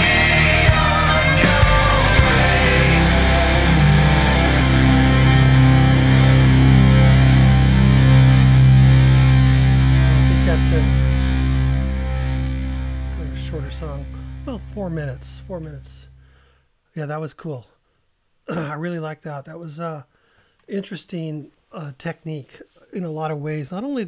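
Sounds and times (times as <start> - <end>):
distorted electric guitar: 0.0 - 16.4
low bass notes: 0.0 - 16.4.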